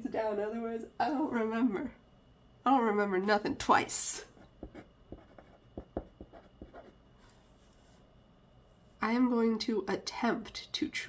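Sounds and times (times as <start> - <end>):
pen scratching on paper: 4.6 - 8.0.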